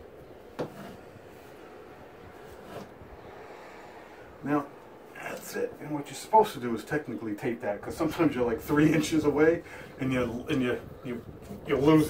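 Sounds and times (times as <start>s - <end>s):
fish tape rubbing in electrical box: 0.6s - 1.6s, 2.4s - 2.9s.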